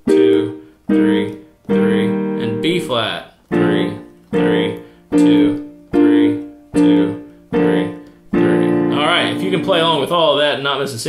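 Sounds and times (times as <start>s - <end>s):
piano chords: 0.0s - 10.5s
man's voice: 0.0s - 11.0s.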